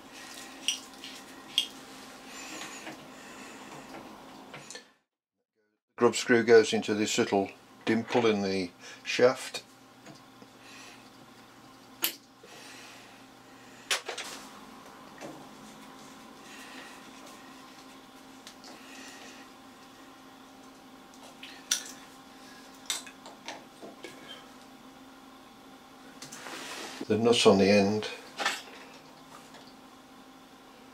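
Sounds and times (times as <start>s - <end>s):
faint hum: 0.0s - 5.0s, 6.0s - 30.9s.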